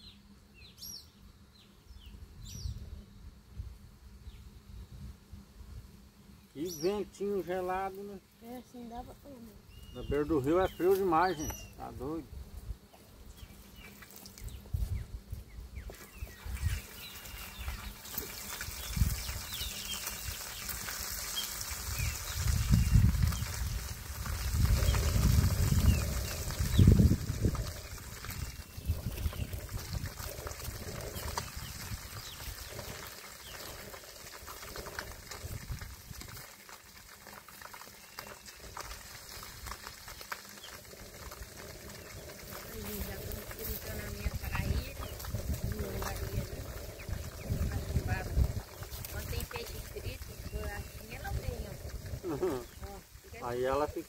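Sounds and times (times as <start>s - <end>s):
food sizzling in a pan: 16.3s - 53.9s
wind gusts buffeting microphone: 21.8s - 33.9s, 34.5s - 36.4s, 41.3s - 53.4s.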